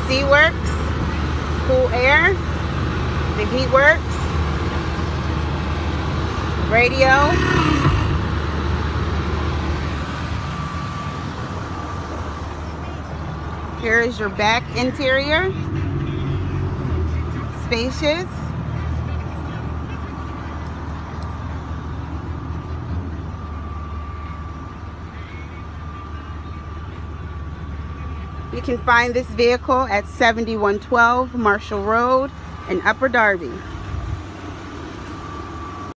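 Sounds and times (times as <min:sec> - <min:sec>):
car engine idling: 0:00.0 - 0:35.9.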